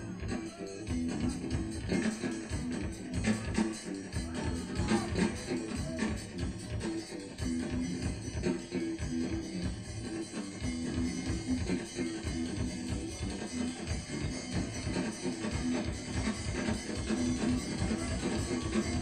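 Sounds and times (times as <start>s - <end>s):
bass guitar: 0.0s - 19.0s
drum kit: 0.0s - 19.0s
electric guitar: 0.0s - 19.0s.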